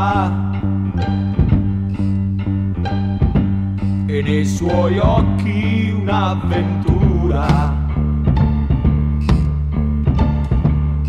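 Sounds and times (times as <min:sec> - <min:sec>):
instrumental pop music: 0:00.0 - 0:11.0.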